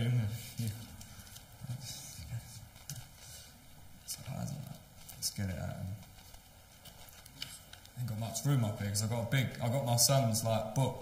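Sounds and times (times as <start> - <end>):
paper rustling: 0.6 - 10.4.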